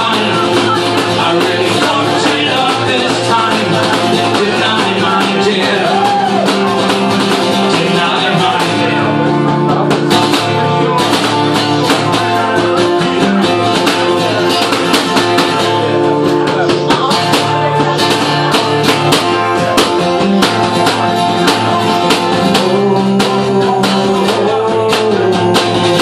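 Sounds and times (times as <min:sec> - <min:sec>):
acoustic guitar strumming: 0:00.0 - 0:26.0.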